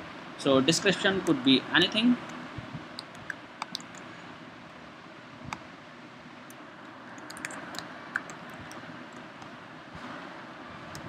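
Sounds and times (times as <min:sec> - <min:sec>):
computer keyboard and mouse clicks: 0:03.0 - 0:04.0.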